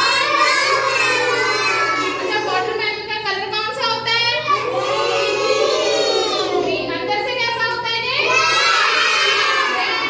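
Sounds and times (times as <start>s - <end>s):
children singing loudly: 0.0s - 2.7s, 4.5s - 6.7s, 8.1s - 10.0s.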